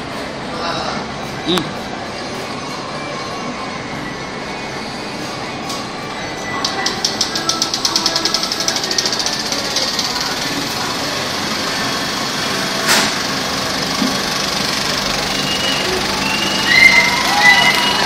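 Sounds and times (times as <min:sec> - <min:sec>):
film projector clattering and whirring: 0:06.6 - 0:18.0.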